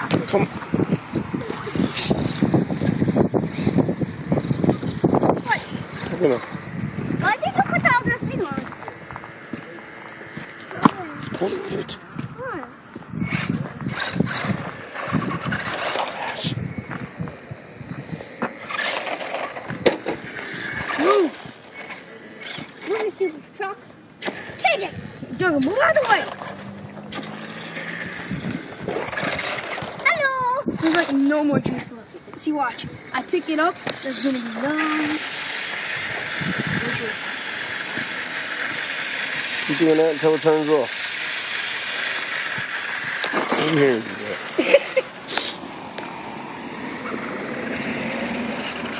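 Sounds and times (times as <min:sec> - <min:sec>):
rc truck tyres crunching on gravel: 0:13.3 - 0:23.0, 0:26.0 - 0:30.1, 0:33.2 - 0:48.9.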